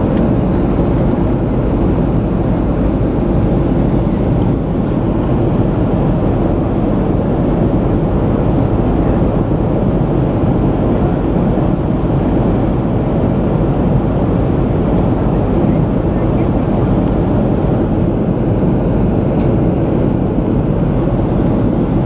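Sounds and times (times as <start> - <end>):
jet engine rumble in cabin: 0.0 - 22.0
rushing airflow: 0.0 - 22.0.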